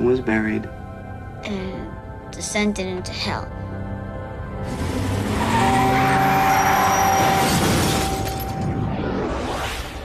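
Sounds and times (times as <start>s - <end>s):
vehicle engine and road noise: 4.6s - 7.4s.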